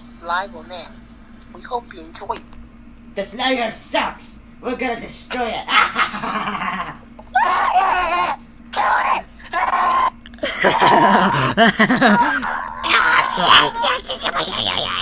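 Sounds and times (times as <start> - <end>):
people laughing and shouting: 9.4 - 15.0.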